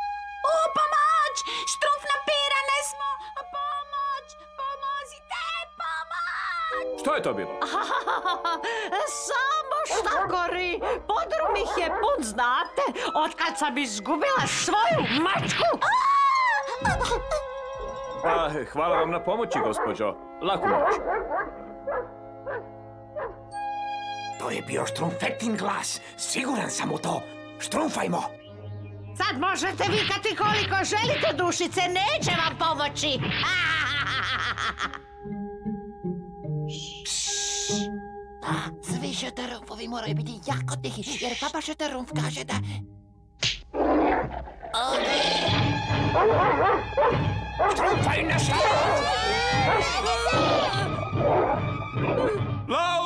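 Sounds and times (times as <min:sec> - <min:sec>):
background music of held chords: 0:06.5 - 0:15.6, 0:16.3 - 0:44.4, 0:45.0 - 0:53.0
dog yapping: 0:09.9 - 0:12.4, 0:20.6 - 0:23.4, 0:45.1 - 0:52.4.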